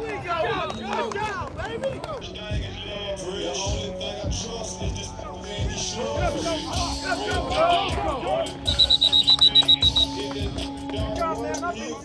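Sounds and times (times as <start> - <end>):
background music: 0.0 - 12.0
whistle trill: 8.6 - 10.6.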